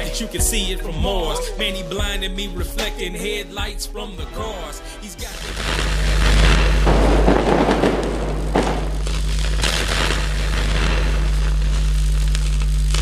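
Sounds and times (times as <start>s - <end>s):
electric crackling and zapping: 5.2s - 13.0s
low hum: 5.3s - 13.0s.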